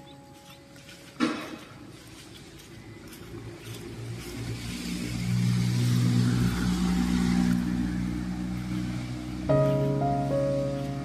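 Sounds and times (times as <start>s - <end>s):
car engine passing: 2.8s - 11.0s.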